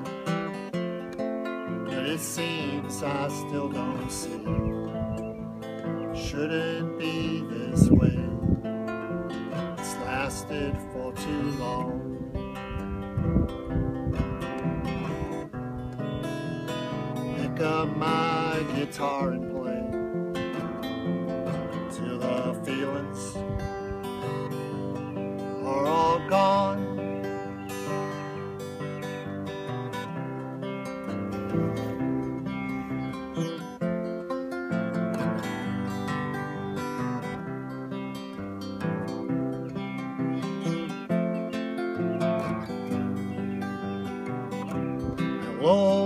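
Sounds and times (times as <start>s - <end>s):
acoustic guitar strumming: 0.0s - 46.0s.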